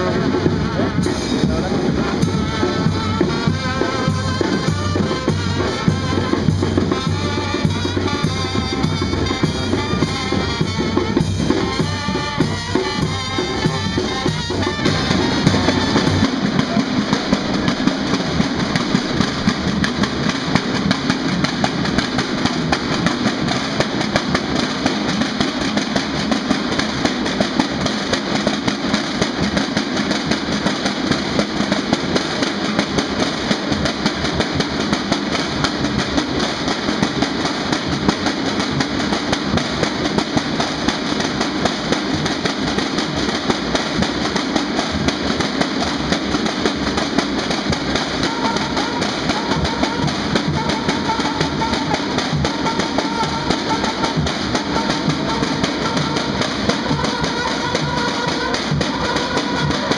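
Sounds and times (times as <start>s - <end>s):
marching snare drums: 0.0s - 59.9s.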